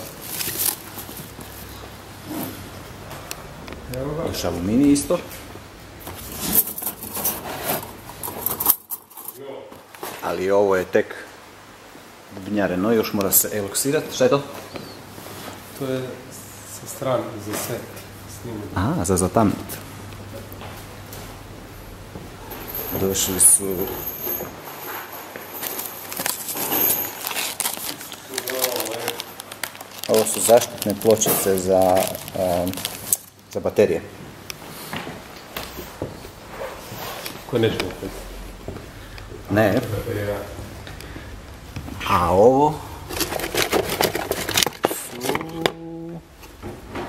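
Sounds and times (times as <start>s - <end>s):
plastic wrapping crinkling: 0.0s - 1.8s, 22.7s - 33.9s, 43.0s - 45.8s
plastic bag rustling: 0.0s - 2.8s, 6.0s - 9.4s, 22.5s - 33.9s, 42.9s - 45.7s
metal parts rattling: 6.4s - 9.4s, 22.5s - 33.2s, 43.0s - 45.4s
small crackles and clicks: 25.6s - 33.8s
person speaking: 30.0s - 34.1s, 37.4s - 38.6s, 39.3s - 46.3s.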